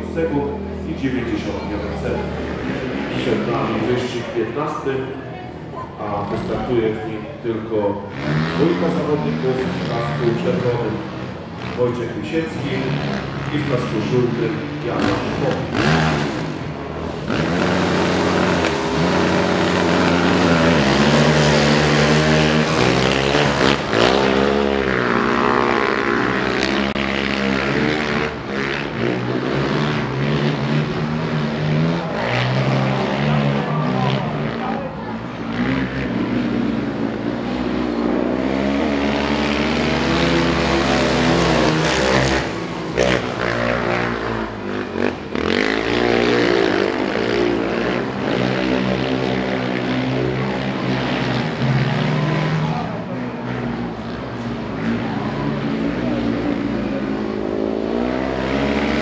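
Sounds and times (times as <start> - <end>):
quad bike engines revving: 0.0 - 59.0.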